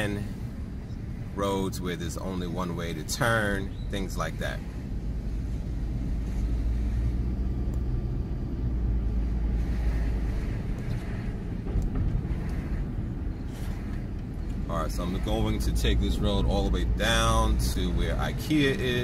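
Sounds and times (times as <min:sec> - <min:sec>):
car engine and tyre rumble: 0:00.0 - 0:19.0.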